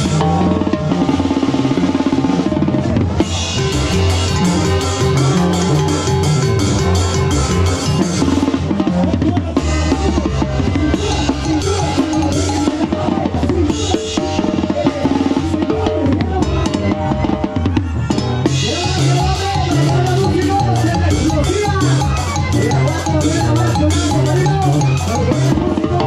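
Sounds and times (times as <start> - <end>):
snare drums and cymbals: 0.0 - 26.0
brass sustained notes: 3.1 - 8.6.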